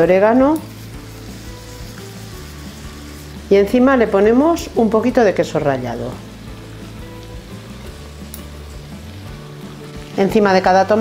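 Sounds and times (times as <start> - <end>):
soft background music: 0.0 - 11.0
vegetables sizzling in a frying pan: 0.0 - 11.0.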